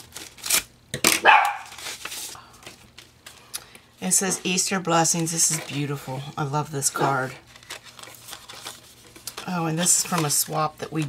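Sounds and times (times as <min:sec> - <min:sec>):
dog barking: 0:01.2 - 0:01.7
paper rustling: 0:01.4 - 0:03.5, 0:04.3 - 0:11.0.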